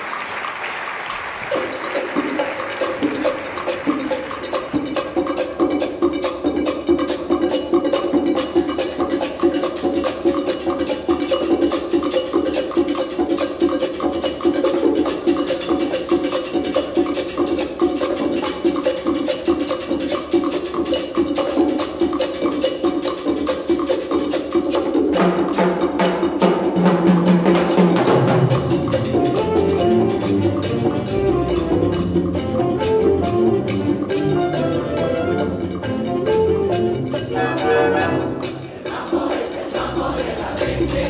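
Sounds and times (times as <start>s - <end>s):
percussion pattern: 0.0s - 41.0s
wind band playing: 28.8s - 39.1s.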